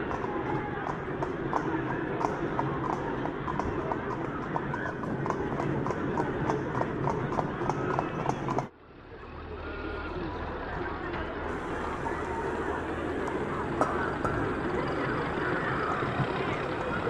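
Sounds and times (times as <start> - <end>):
horse hooves clip-clopping on street: 0.0 - 8.7, 11.5 - 17.0
murmur of voices: 0.0 - 17.0.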